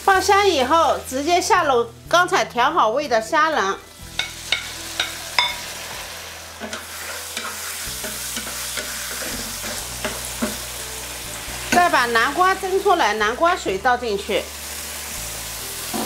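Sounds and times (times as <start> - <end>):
shrimp sizzling in oil: 0.0 - 16.0
spatula knocking on wok: 4.2 - 5.7, 7.4 - 10.6.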